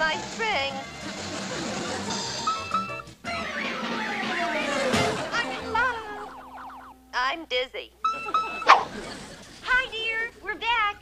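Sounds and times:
cartoon soundtrack music: 0.1s - 6.9s.

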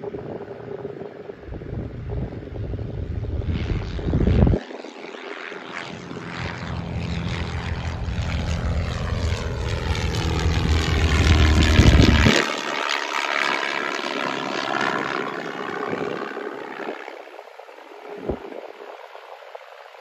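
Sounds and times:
propeller airplane flying overhead: 0.0s - 20.0s.

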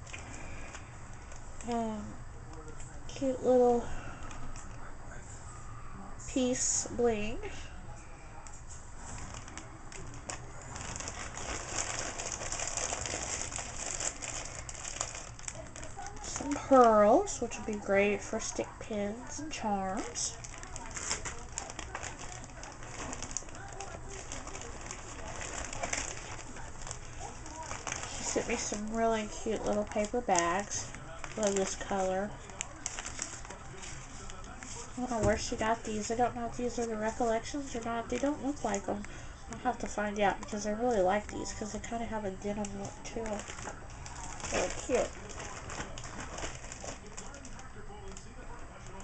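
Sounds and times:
packaging rustling and crinkling: 8.6s - 18.6s, 19.7s - 49.0s.

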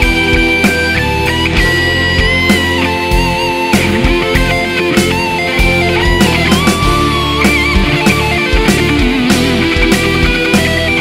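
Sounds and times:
drums with steady beat: 0.0s - 11.0s
electric guitar: 0.0s - 11.0s
hard rock song: 0.0s - 11.0s.

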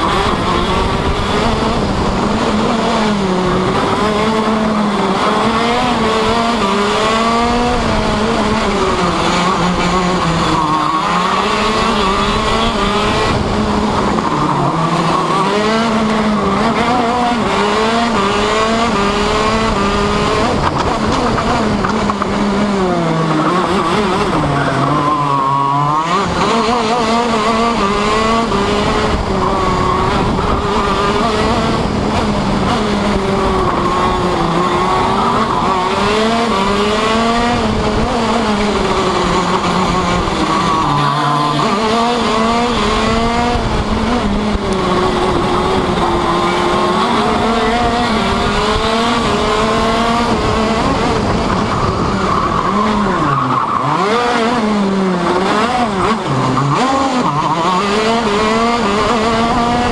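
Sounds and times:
kart engine revving: 0.0s - 59.9s.

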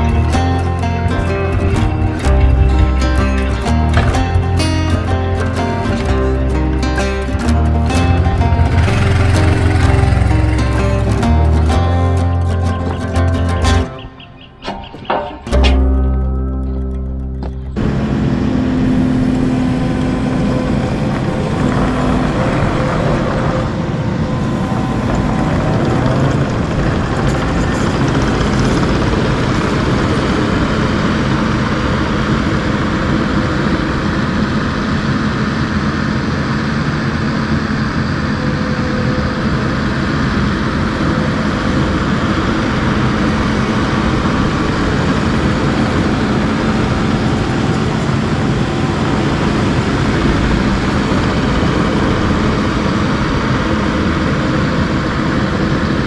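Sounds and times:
diesel engine running: 0.0s - 14.5s, 15.1s - 56.0s.

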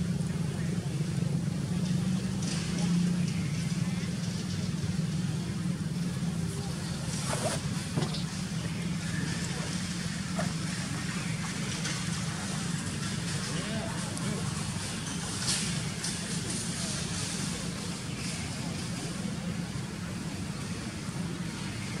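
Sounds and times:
faint indistinct voices: 0.0s - 22.0s
low outdoor hum: 0.0s - 22.0s.

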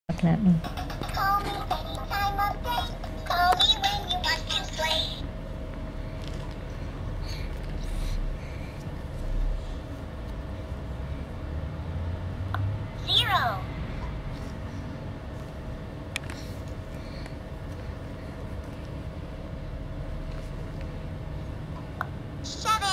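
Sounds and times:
faint steady hum: 0.1s - 22.9s.

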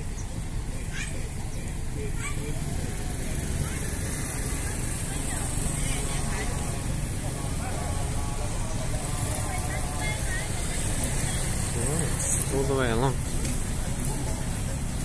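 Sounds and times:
boat engine drone: 0.0s - 15.0s
faint voices: 0.0s - 15.0s.

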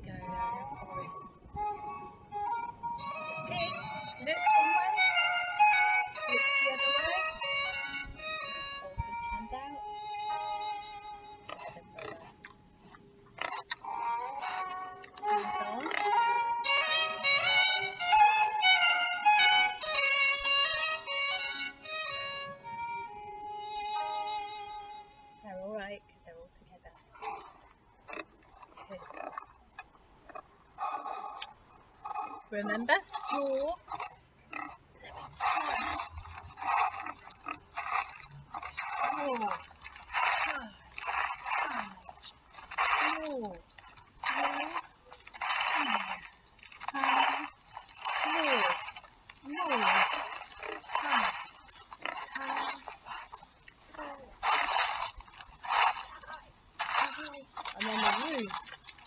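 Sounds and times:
instrumental music: 0.0s - 12.9s, 13.6s - 26.2s.

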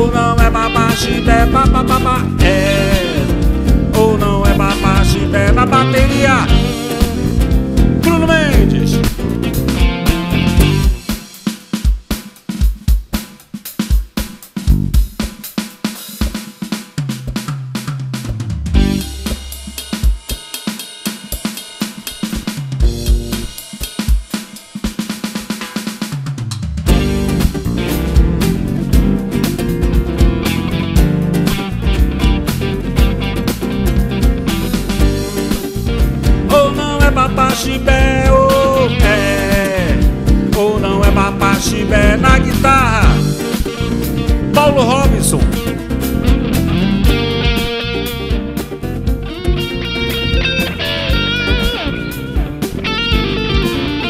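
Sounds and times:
drum kit solo: 0.0s - 54.0s
full band playing: 0.0s - 54.0s.

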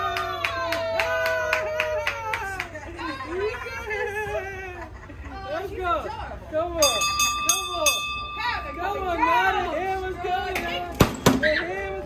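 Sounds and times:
people's voices: 0.0s - 12.0s
steady high ringing tone: 6.8s - 9.8s.

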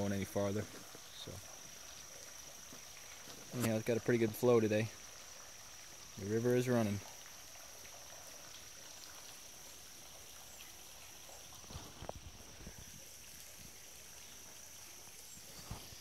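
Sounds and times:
stream trickling over stones: 0.0s - 16.0s.

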